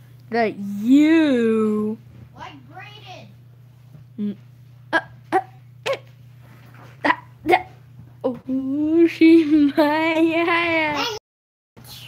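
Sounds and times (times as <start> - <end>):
steady low hum: 0.0 - 11.2.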